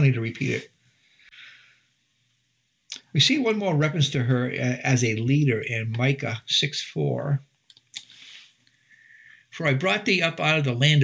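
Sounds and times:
man breathing in: 0:00.9 - 0:02.0, 0:08.0 - 0:09.5.

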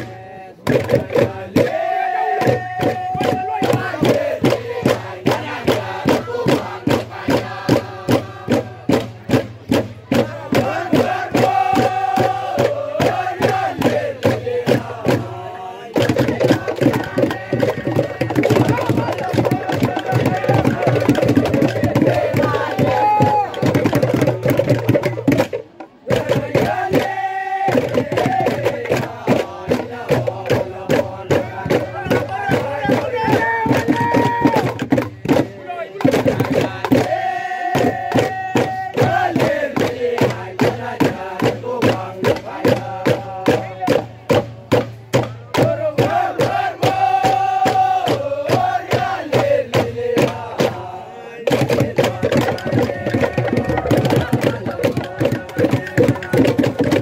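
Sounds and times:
fast percussion beat: 0:00.0 - 0:57.0
men singing and chanting: 0:00.0 - 0:57.0.

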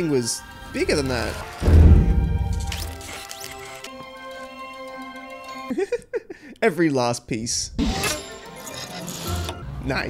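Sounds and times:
orchestral score music: 0:00.1 - 0:04.0
low rumble: 0:01.6 - 0:02.8
sharp hit: 0:01.6 - 0:03.0
mechanical metallic movement sounds: 0:07.8 - 0:09.6.

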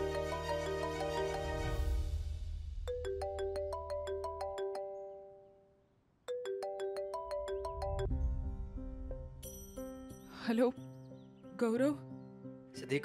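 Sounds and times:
mobile phone ringtone melody: 0:00.0 - 0:02.0, 0:02.9 - 0:05.6, 0:06.3 - 0:08.1.

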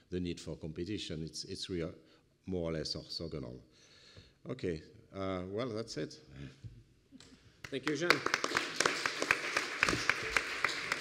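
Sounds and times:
many people clapping: 0:07.6 - 0:11.0.

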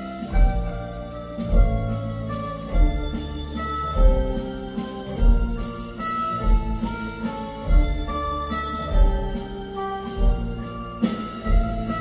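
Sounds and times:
deep drum beat: 0:00.0 - 0:12.0
live band playing held chords: 0:00.0 - 0:12.0.

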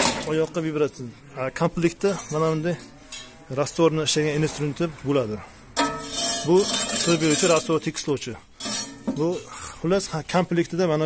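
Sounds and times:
man speaking: 0:00.2 - 0:02.8, 0:03.5 - 0:05.5, 0:06.4 - 0:08.4, 0:09.2 - 0:11.0
steel scraper rasping on concrete mix: 0:05.8 - 0:07.8.

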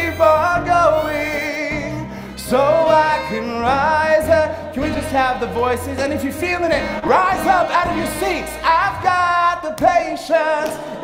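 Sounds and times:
instrumental backing music: 0:00.0 - 0:11.0
mixed choir singing: 0:06.5 - 0:11.0.

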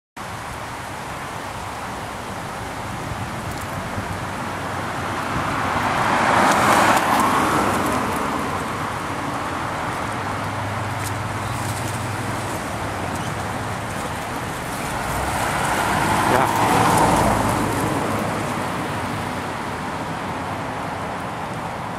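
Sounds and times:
van engine and tyres passing: 0:00.2 - 0:21.9.

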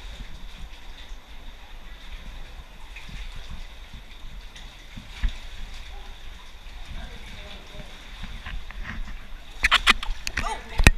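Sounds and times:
muffled thumps and rustling: 0:03.0 - 0:05.9, 0:08.1 - 0:10.9.

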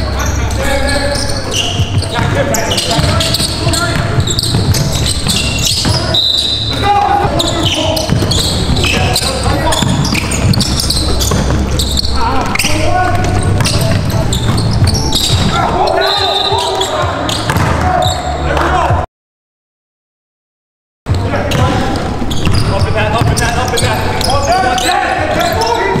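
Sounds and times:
basketball bouncing: 0:01.7 - 0:15.8, 0:16.5 - 0:18.0, 0:21.1 - 0:24.4
players shouting: 0:02.2 - 0:19.0.

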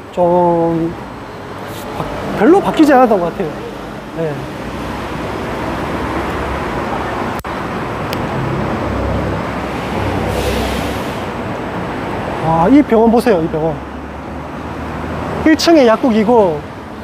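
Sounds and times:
traffic hum: 0:00.0 - 0:17.0.

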